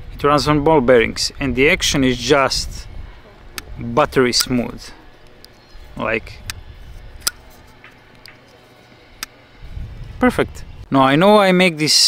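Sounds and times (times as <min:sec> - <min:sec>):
knife blade snapping click: 0:07.2 - 0:07.4.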